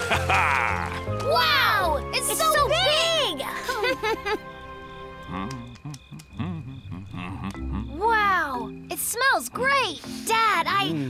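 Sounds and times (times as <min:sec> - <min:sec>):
soft background music: 0:00.0 - 0:11.0
frogs croaking: 0:02.0 - 0:11.0.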